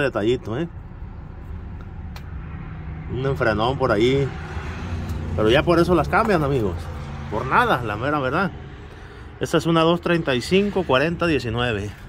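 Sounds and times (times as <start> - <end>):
motor vehicle rumbling: 0.0 - 12.0.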